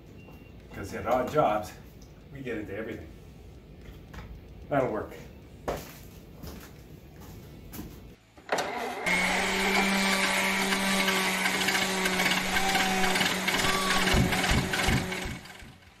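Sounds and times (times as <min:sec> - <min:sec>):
motor humming and hissing: 0:08.6 - 0:16.0.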